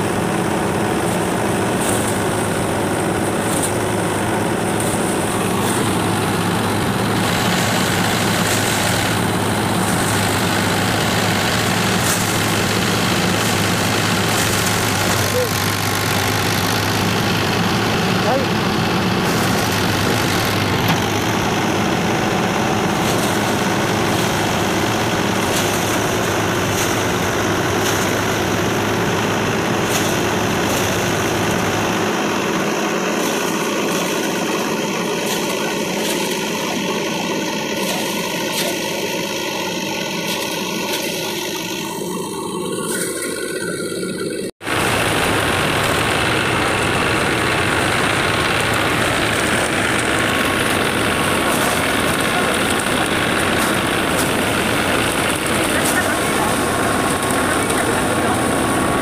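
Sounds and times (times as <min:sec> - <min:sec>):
thresher machine drone: 0:00.0 - 0:59.0.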